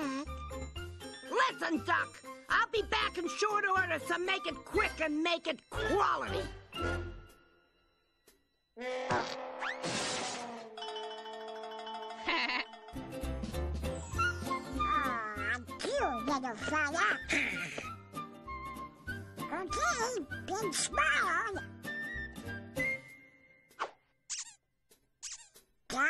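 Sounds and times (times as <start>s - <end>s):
bleat-like cartoon voice: 8.8s - 10.8s
cartoon music: 10.6s - 17.5s
high wavering cartoon squeaks: 24.3s - 24.6s, 25.2s - 25.7s.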